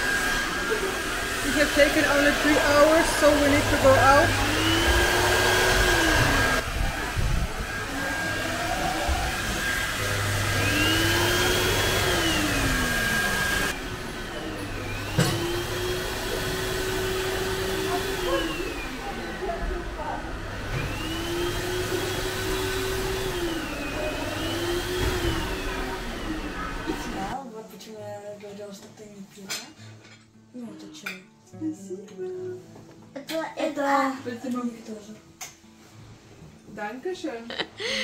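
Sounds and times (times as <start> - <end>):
hair dryer blowing air: 0.0 - 27.4, 37.8 - 38.0.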